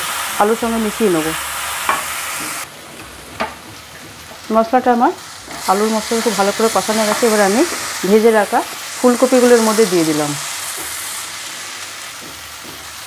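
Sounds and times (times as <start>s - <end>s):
food sizzling in hot oil: 0.0s - 13.0s.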